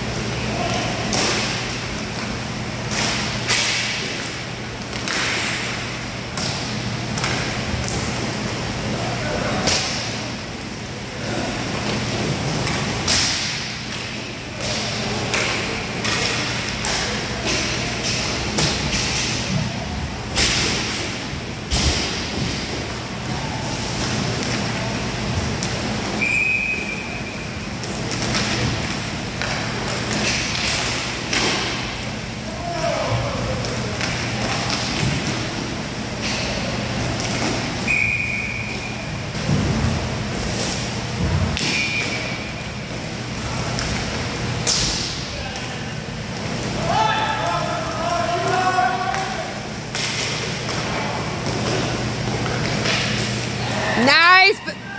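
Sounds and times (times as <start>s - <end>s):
sticks and puck clacking: 4.9s - 5.7s, 12.6s - 19.6s, 48.0s - 53.5s.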